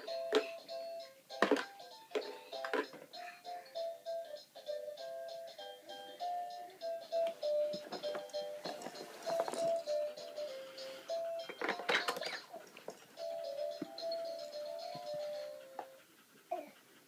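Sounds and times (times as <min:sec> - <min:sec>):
toy knocking and clattering: 0:00.0 - 0:00.7, 0:01.3 - 0:03.2, 0:07.0 - 0:10.5, 0:11.1 - 0:15.2.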